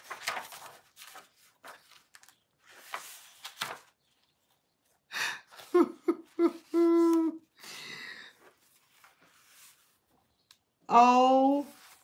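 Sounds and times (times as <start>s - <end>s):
woman laughing: 5.5s - 7.5s
woman humming: 5.8s - 7.4s.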